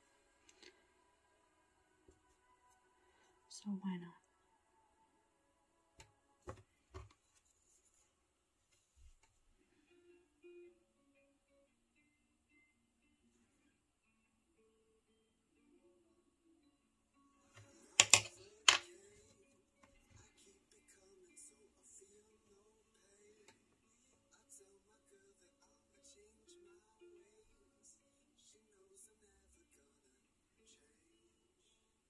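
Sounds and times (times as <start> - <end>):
faint background music: 0.0 - 32.0
paintbrush and paint bottles clicking: 17.6 - 19.0.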